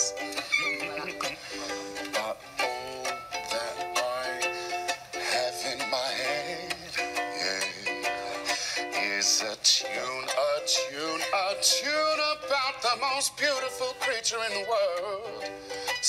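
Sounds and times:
man singing: 0:00.0 - 0:16.0
ukulele strumming: 0:00.0 - 0:16.0.

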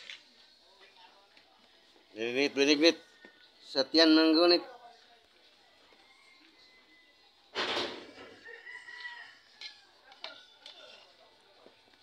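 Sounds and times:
faint rooster crowing: 0:02.9 - 0:03.8, 0:05.5 - 0:10.6.

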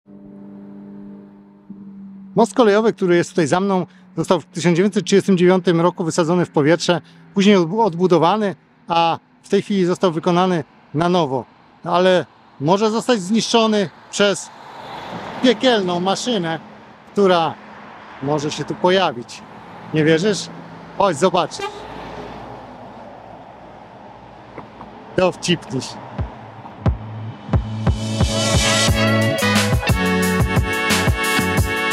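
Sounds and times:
truck passing by: 0:00.1 - 0:31.9.

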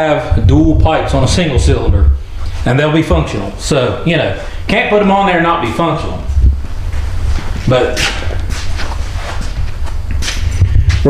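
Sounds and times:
low rumble: 0:00.2 - 0:03.8, 0:04.6 - 0:11.0.

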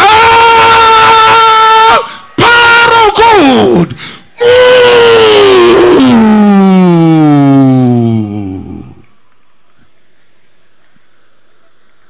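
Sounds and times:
man crying out through a pa: 0:04.4 - 0:09.0.

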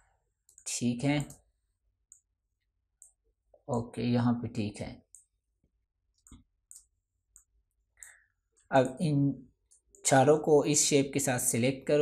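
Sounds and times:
computer mouse clicks: 0:00.4 - 0:02.3, 0:02.9 - 0:03.2, 0:05.0 - 0:05.4, 0:06.1 - 0:08.7, 0:09.6 - 0:10.0.

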